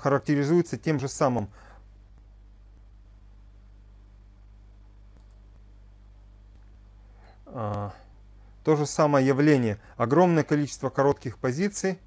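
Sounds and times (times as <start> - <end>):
low electrical hum: 0.0 - 12.0
faint clicks: 5.1 - 5.7.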